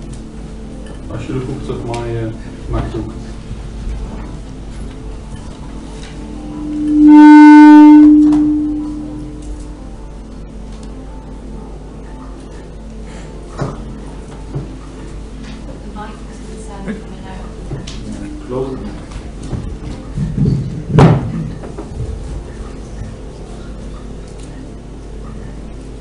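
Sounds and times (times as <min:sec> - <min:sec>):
loud low tone over sound system: 0:03.5 - 0:12.1, 0:17.6 - 0:21.6.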